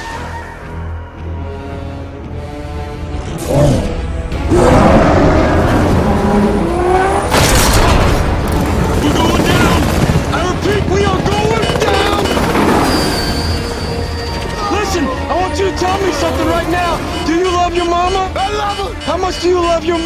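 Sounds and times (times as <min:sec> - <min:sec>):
film score music: 0:00.0 - 0:20.0
helicopter noise: 0:08.0 - 0:20.0.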